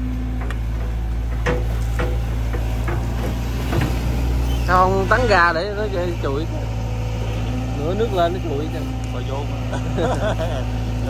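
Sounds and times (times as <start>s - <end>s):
diesel engine droning: 0.0s - 11.0s
machine knocks and clicks: 0.2s - 4.4s.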